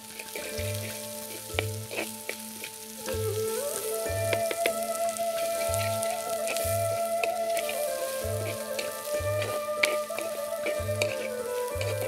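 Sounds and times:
food sizzling in oil: 0:00.0 - 0:12.0.

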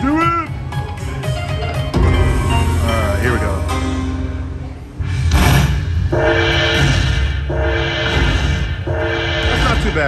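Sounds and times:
slot machine game music: 0:01.5 - 0:04.7.

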